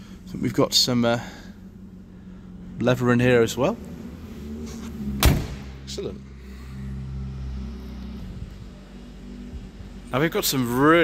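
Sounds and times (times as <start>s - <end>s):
steady low hum: 0.0s - 10.2s
car door thud: 5.2s - 5.8s.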